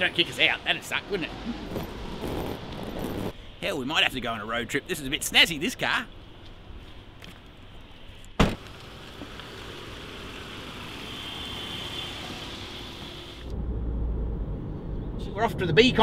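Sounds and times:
car engine and tyre noise: 0.0 - 3.6, 5.8 - 16.0
low road rumble: 0.0 - 5.2, 5.8 - 16.0
car tailgate slamming shut: 8.4 - 8.7.

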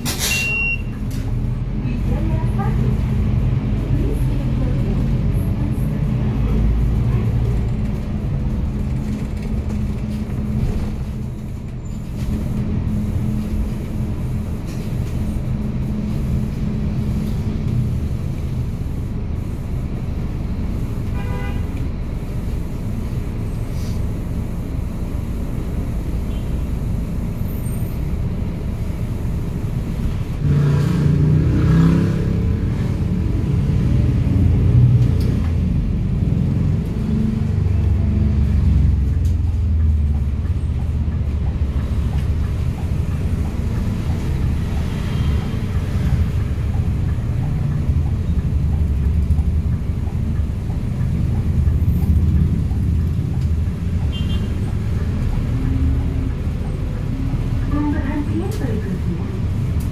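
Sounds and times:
bus engine and road rumble: 0.0 - 59.9.

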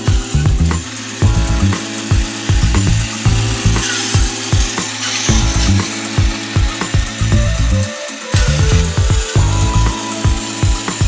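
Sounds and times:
toy robot motor buzzing: 0.0 - 11.0.

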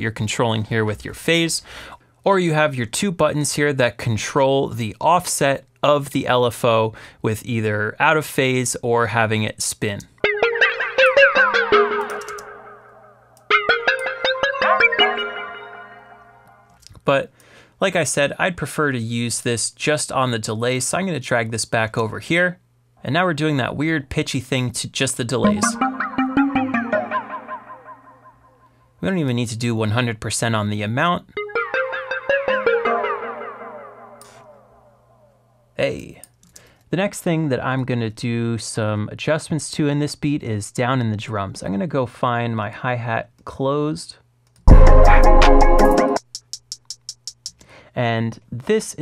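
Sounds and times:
flanged synth pluck notes: 10.2 - 16.7, 25.4 - 28.6, 31.4 - 35.3.

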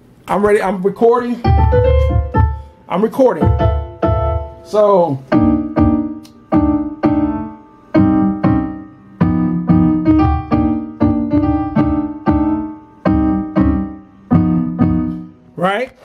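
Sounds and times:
piano chords: 1.3 - 15.8.

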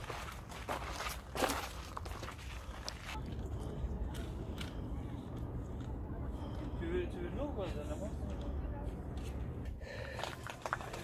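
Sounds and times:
steady low rumble: 0.0 - 11.0
faint voices of people: 3.2 - 11.0.

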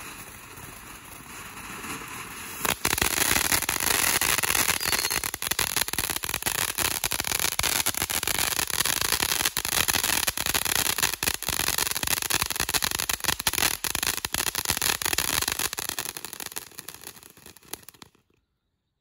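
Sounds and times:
firework fountain crackling: 0.0 - 18.2.

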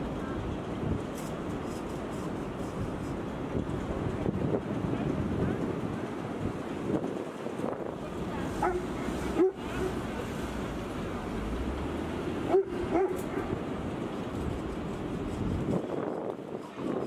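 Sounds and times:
wind on microphone: 0.0 - 17.0
dog barking: 8.6 - 10.0, 12.5 - 13.6.

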